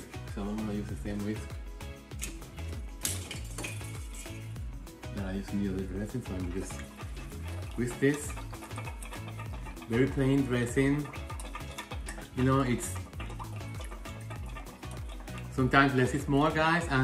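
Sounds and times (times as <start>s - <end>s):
background music: 0.0s - 17.0s
whisk clinking against metal bowl: 3.0s - 4.6s, 5.4s - 17.0s.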